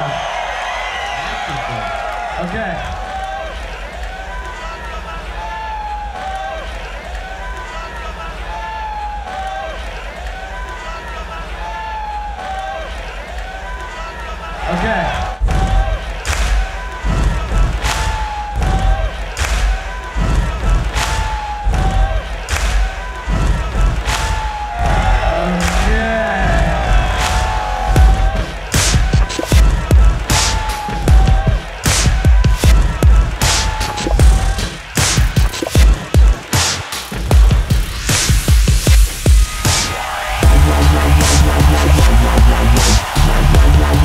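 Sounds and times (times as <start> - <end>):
kick and snare beat: 15.4 - 44.0
electronic bass music: 21.6 - 44.0.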